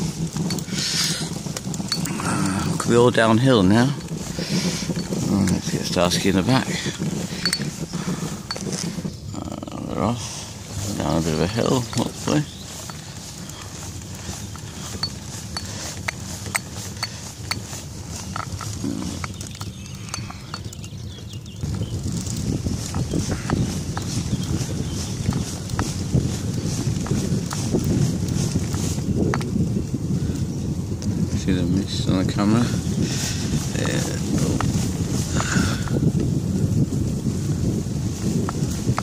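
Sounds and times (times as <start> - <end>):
tyre rumble on wet road: 0.0 - 39.0
wind noise on microphone: 0.0 - 39.0.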